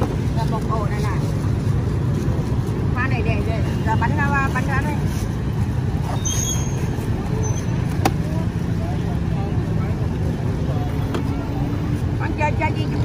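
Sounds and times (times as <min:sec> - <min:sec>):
street traffic rumble: 0:00.0 - 0:13.0.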